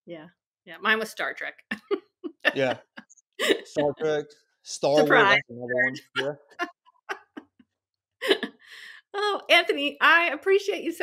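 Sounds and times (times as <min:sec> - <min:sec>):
people laughing: 0:02.3 - 0:06.4.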